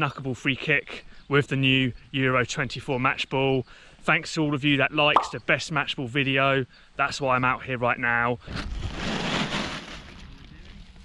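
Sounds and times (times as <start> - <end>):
plastic bag rustling: 8.7 - 10.3.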